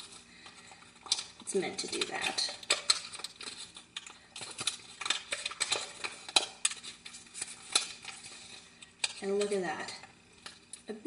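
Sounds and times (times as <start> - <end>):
paper crinkling: 0.0 - 10.9.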